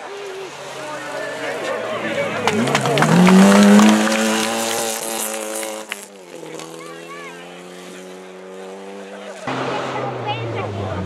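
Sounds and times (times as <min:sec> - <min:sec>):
distant rally car engine approaching: 0:00.0 - 0:11.0
rally car engine revving hard: 0:01.5 - 0:11.0.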